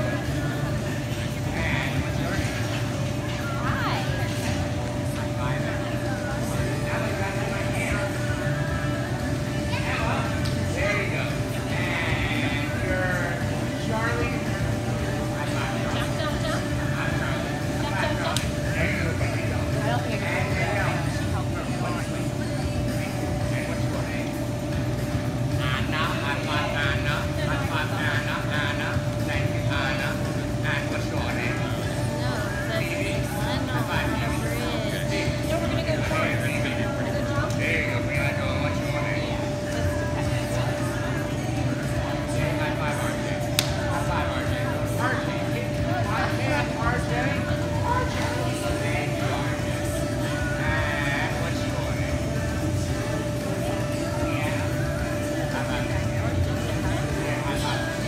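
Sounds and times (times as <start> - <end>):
constant hum: 0.0 - 58.0.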